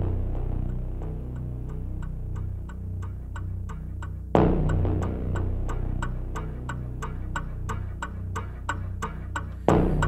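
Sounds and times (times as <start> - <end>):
clock-like ticks: 0.0 - 10.0
low steady drone: 0.0 - 10.0.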